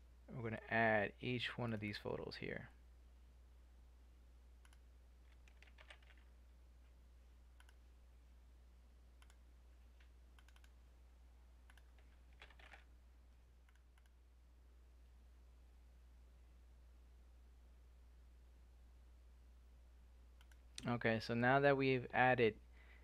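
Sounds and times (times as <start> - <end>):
low steady hum: 0.0 - 23.0
mouse and keyboard clicks: 7.6 - 7.8, 9.2 - 9.4, 10.4 - 10.8, 11.7 - 12.9.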